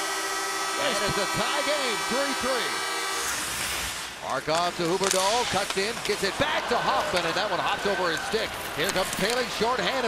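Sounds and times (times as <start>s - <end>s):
arena goal horn: 0.0s - 3.4s
crowd noise: 5.0s - 10.0s.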